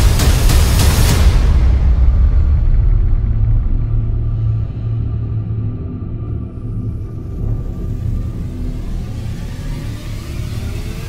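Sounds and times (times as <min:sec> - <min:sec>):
dark ambient drone music: 0:00.0 - 0:11.0.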